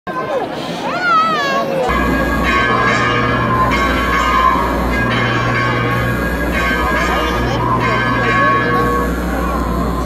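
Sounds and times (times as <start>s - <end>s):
bells chiming: 1.9s - 10.0s
steady low drone: 1.9s - 10.0s.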